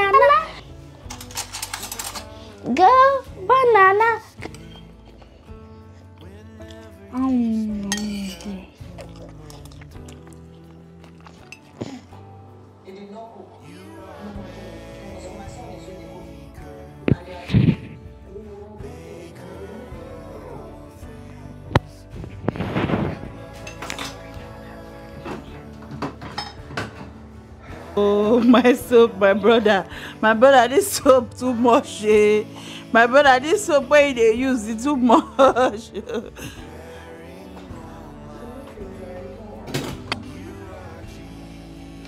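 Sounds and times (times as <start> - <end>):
background music: 0.0 - 42.0
spoon clinking against bowl: 7.9 - 9.8
drawn-out vocal sound: 13.6 - 26.2, 27.3 - 42.0
dishes clinking in a steel sink: 26.0 - 27.1.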